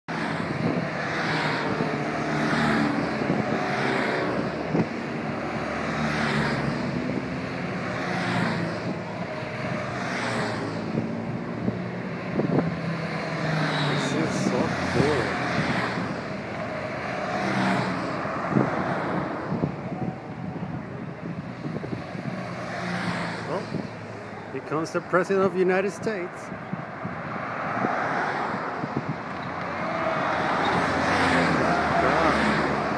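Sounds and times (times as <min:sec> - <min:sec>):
motorcycles riding past: 0:00.2 - 0:24.6, 0:27.9 - 0:32.9.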